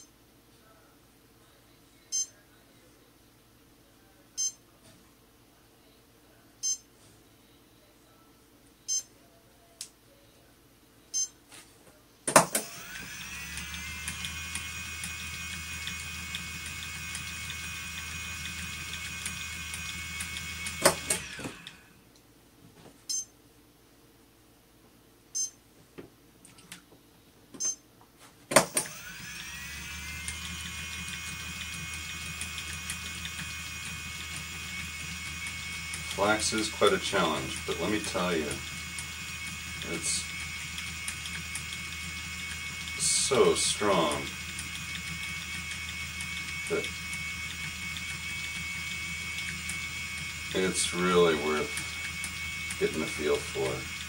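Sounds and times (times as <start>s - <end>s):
electric spinning wheel motor whine: 12.4s - 22.0s, 28.6s - 54.0s.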